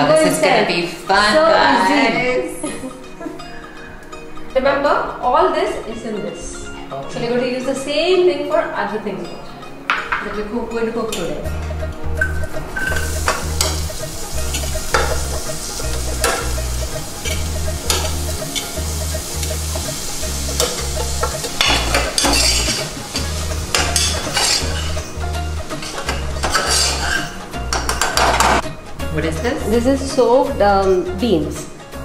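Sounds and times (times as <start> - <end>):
spoon clinking on plate and pot: 12.2 - 13.8, 20.6 - 22.8, 23.7 - 25.0, 25.8 - 28.6
vegetables sizzling in oil: 12.2 - 28.6.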